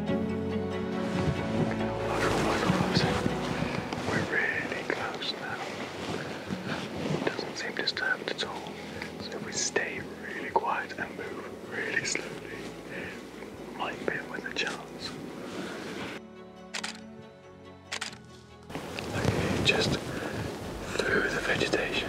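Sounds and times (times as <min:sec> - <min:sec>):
background music: 0:00.0 - 0:22.0
footsteps in dry leaf litter: 0:01.3 - 0:07.4
quiet whispering: 0:02.1 - 0:16.0, 0:19.0 - 0:22.0
small crackles: 0:17.9 - 0:21.9.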